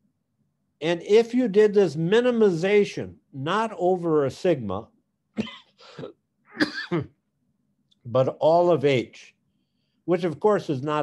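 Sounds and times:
man coughing and clearing throat: 5.3 - 7.2.

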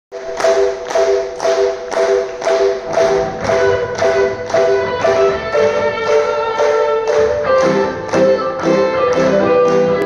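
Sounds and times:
band chord struck repeatedly: 0.1 - 10.0
low notes and higher tones: 0.1 - 10.0.

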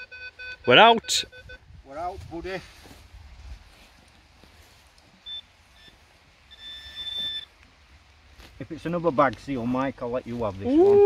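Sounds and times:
metal detector electronic tone: 0.0 - 1.6, 5.2 - 7.5.

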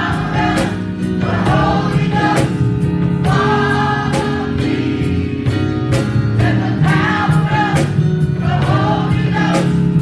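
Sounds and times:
choir singing gospel: 0.0 - 10.0.

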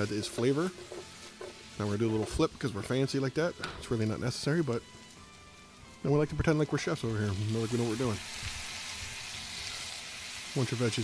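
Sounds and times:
food sizzling in a skillet: 0.0 - 11.0.

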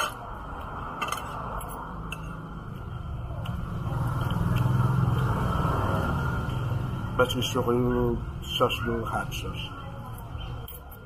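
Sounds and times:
vehicle engine rumble passing: 0.0 - 9.2.

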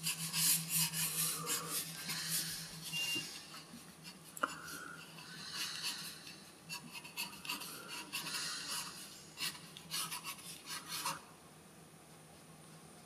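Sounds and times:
pencil scratching on paper: 0.0 - 2.8, 3.6 - 11.2.

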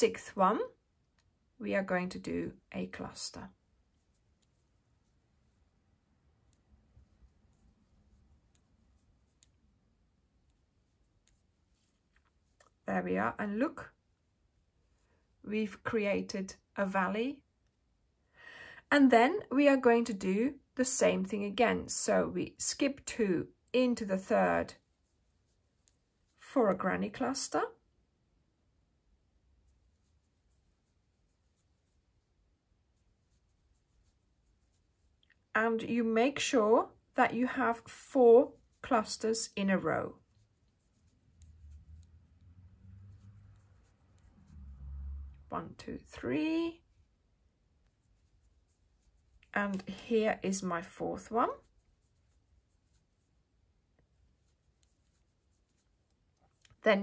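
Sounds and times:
crochet hook rubbing yarn: 1.8 - 15.0, 21.9 - 27.7, 29.5 - 57.0.

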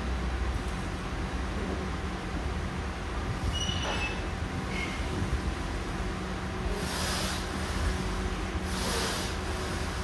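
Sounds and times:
low gym hum: 0.0 - 10.0.

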